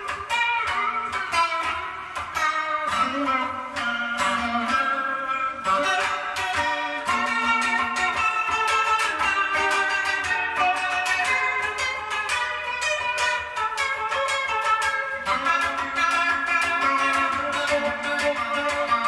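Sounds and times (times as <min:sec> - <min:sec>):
electric guitar picking notes: 0:00.0 - 0:19.0.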